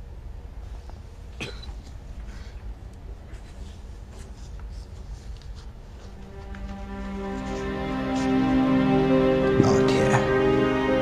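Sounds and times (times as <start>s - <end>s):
faint low hum: 0.0s - 11.0s
man coughing: 1.4s - 1.8s.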